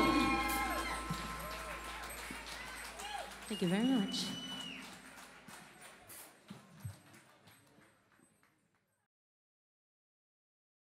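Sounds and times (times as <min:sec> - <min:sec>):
audience applause: 0:00.0 - 0:08.1
hand claps: 0:00.0 - 0:08.9.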